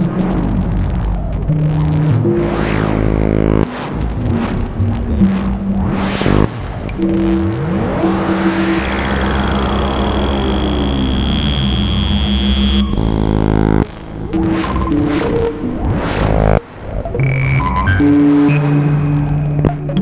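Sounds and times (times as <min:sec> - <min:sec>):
deep steady drone: 0:00.0 - 0:20.0
modular synthesizer improvisation: 0:00.0 - 0:20.0
rising pitch glides: 0:01.1 - 0:20.0.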